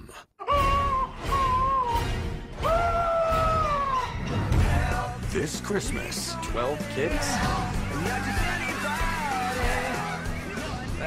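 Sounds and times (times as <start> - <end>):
man screaming: 0.4 - 4.2
background music: 0.4 - 11.0.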